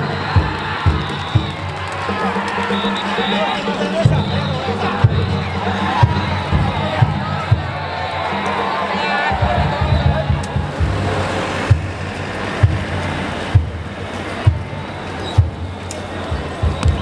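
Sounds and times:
drum beating steadily: 0.0s - 17.0s.

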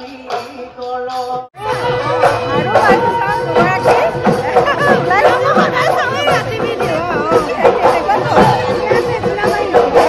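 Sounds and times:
background music: 0.0s - 10.0s
crowd babble: 0.0s - 10.0s
people chatting: 1.6s - 10.0s.

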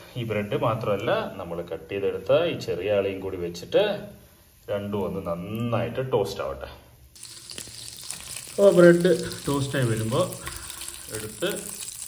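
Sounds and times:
butter sizzling in frying pan: 7.2s - 12.0s
man talking: 8.6s - 11.8s.

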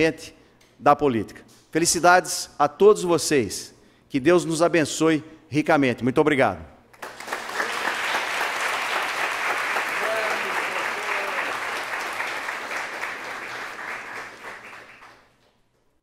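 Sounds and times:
audience applauding: 7.0s - 15.6s.

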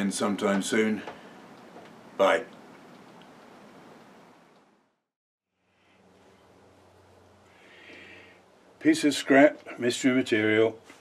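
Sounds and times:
faint room hiss: 0.0s - 11.0s.

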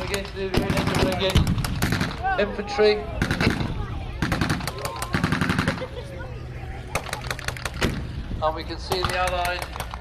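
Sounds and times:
machine gun and rifle fire: 0.5s - 2.2s, 3.2s - 3.6s, 4.2s - 5.8s.

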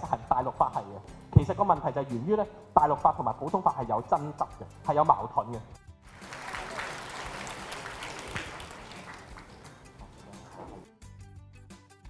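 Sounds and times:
audience applauding: 6.1s - 10.8s.

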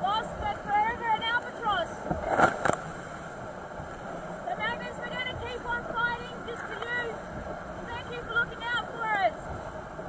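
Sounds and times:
sea waves: 0.0s - 10.0s
wind: 0.0s - 10.0s.

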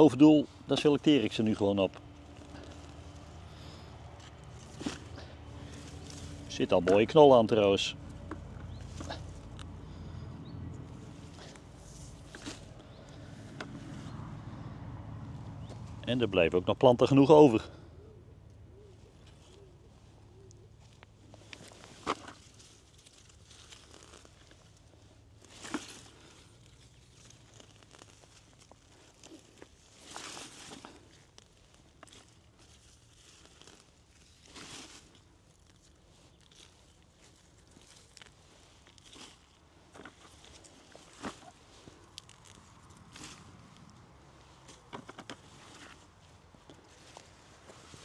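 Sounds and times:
plant rustling into plastic bucket: 1.4s - 7.5s, 11.0s - 14.1s, 21.3s - 48.0s
pigeon cooing: 17.8s - 20.8s.

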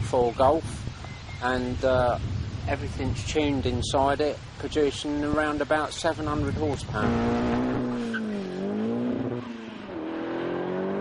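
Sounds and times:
turbocharged car engine accelerating: 6.9s - 11.0s.

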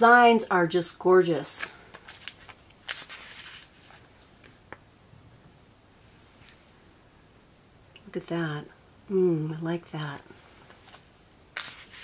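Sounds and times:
paper pages rustling: 1.9s - 4.1s, 10.6s - 12.0s.

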